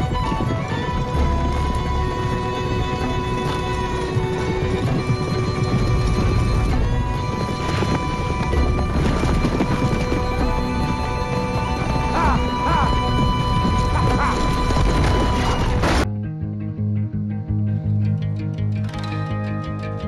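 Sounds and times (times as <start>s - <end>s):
hooves and wheels rumbling: 0.0s - 16.1s
film music: 0.0s - 20.0s.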